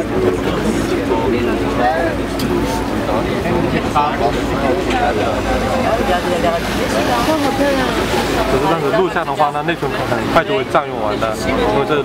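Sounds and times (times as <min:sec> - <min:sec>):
motorboat engine rumbling: 0:00.0 - 0:12.0
people's voices: 0:00.0 - 0:12.0.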